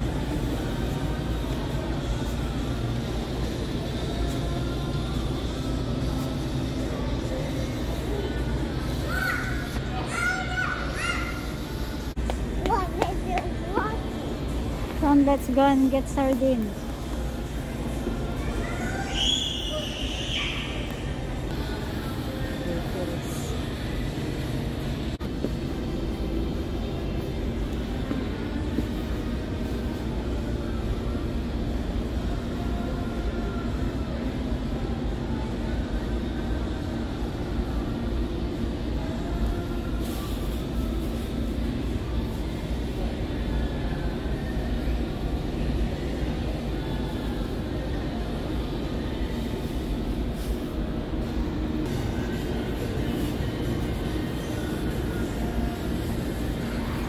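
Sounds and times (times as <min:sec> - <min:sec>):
faint music: 0:00.0 - 0:57.0.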